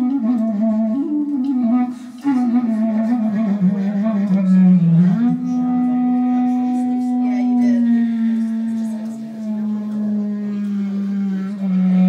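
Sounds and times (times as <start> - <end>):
clarinet long low note: 0.0 - 12.0.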